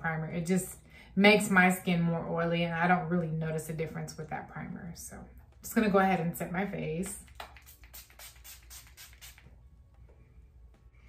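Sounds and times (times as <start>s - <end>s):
spray bottle spritzing: 7.3s - 9.5s.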